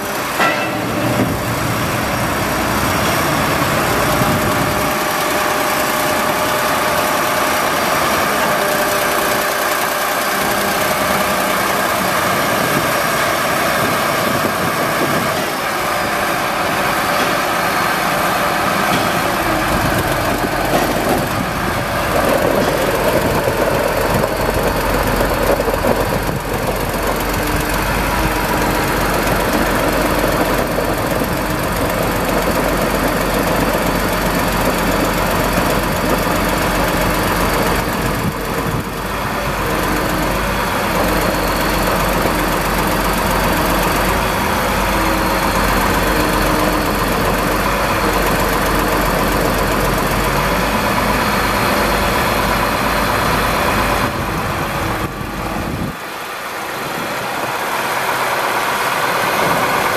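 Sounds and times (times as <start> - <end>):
diesel engine idling: 0.0 - 59.9.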